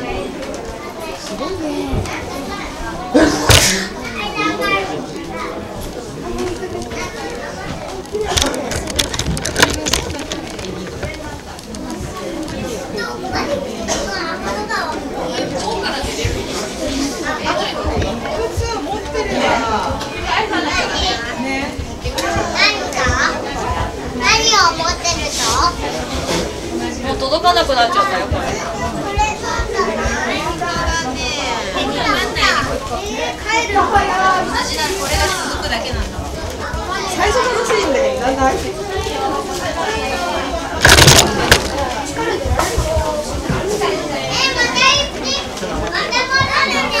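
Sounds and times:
chatter of people: 0.0s - 47.0s
children talking and calling out: 0.0s - 47.0s
crowd murmur: 0.0s - 47.0s.

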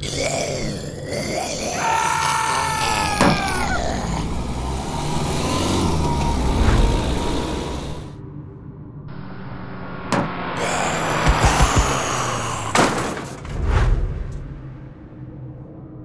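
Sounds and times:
noisy vehicle sound: 3.2s - 8.2s, 9.1s - 13.0s
sharp knock: 10.1s - 13.3s.

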